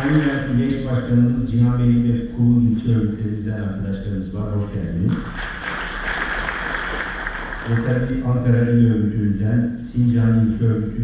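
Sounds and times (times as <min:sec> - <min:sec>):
audience applauding: 0:00.0 - 0:00.5, 0:05.1 - 0:08.0.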